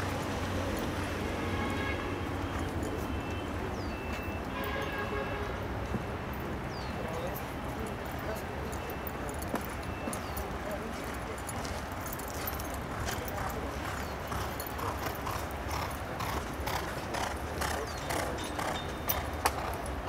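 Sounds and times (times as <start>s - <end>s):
horse hoofbeats galloping on dirt: 9.5s - 20.0s.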